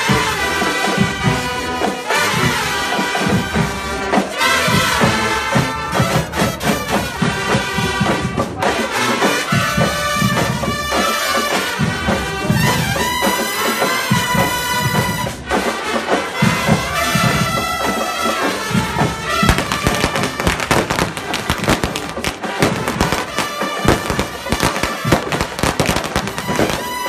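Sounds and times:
marching band brass music: 0:00.0 - 0:27.0
firecracker bangs: 0:18.7 - 0:27.0.

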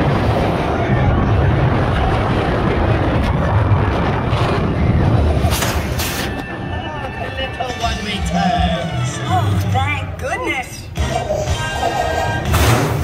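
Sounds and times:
roller coaster rumbling on track: 0:00.0 - 0:13.0.

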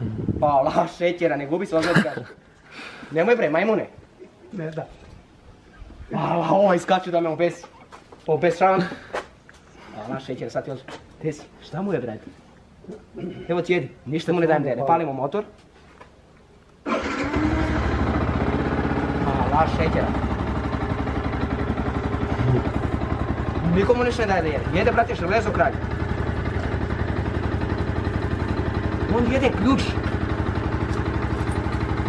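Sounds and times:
motorcycle engine starting and idling: 0:16.8 - 0:32.0.

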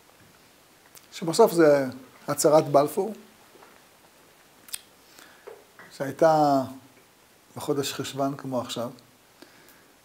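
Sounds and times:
man speaking: 0:01.1 - 0:03.3, 0:05.9 - 0:06.9, 0:07.6 - 0:09.0
faint mouth sounds: 0:04.6 - 0:05.4
mouth click: 0:04.7 - 0:04.9.

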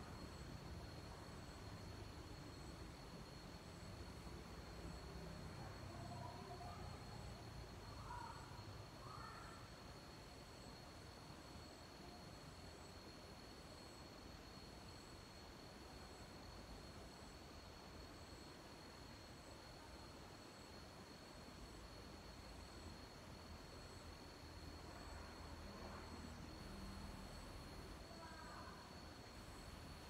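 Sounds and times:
faint background hiss: 0:00.0 - 0:30.0.

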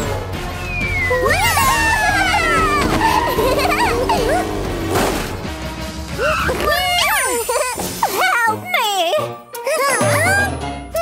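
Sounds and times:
background music: 0:00.0 - 0:11.0
cartoon voices exclaiming: 0:01.2 - 0:04.4, 0:06.2 - 0:08.6.

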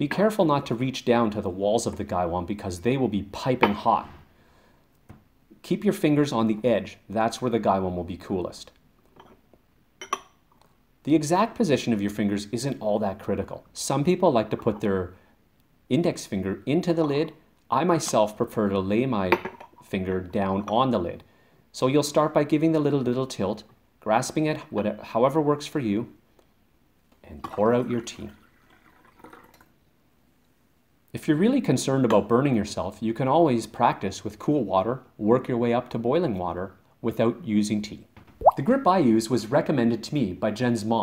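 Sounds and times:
porcelain cup clinking: 0:09.2 - 0:09.4, 0:10.0 - 0:10.4
water trickling into glass: 0:27.4 - 0:29.7, 0:38.4 - 0:38.7.

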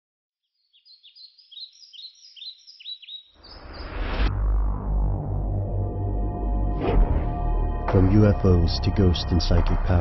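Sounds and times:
birds chirping: 0:00.4 - 0:04.1.

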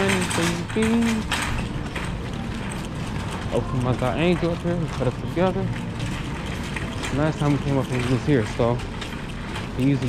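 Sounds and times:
shopping cart rattling on tiled floor: 0:00.0 - 0:10.0.

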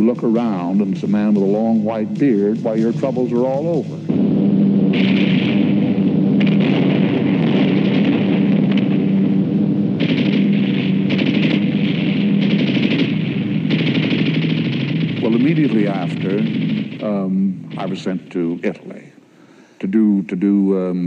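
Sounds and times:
machine-gun fire: 0:00.0 - 0:19.1.

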